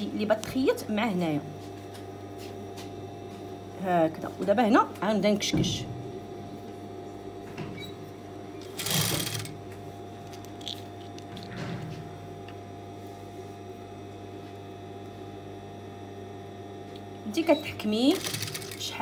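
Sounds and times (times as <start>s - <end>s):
sewing machine motor humming: 8.6s - 9.6s, 17.8s - 19.0s.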